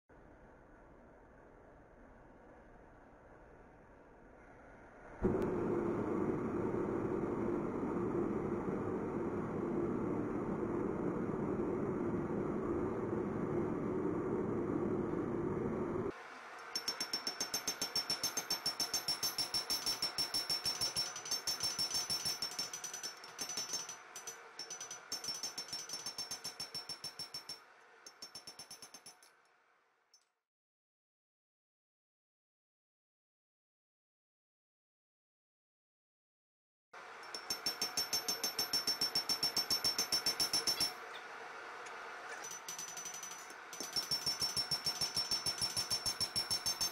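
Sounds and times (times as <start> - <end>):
hammer striking blade on anvil: 16.7 - 29.4, 37.2 - 41.0, 42.3 - 46.9.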